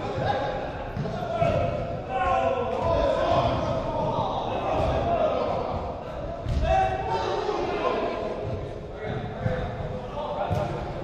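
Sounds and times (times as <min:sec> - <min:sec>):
players shouting in echoing hall: 0:00.0 - 0:11.0.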